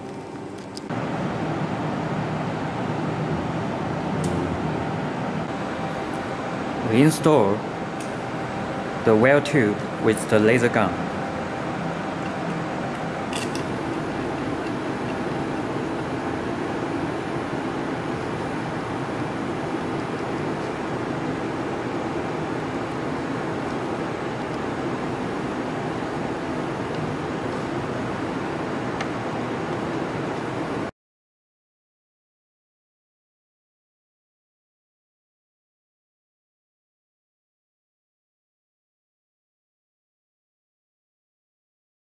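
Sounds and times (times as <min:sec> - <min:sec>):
machinery humming: 0:00.0 - 0:30.9.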